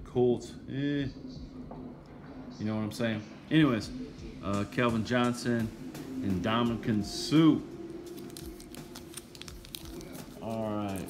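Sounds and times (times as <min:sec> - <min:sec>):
foil wrapper crinkling: 0:08.1 - 0:11.0.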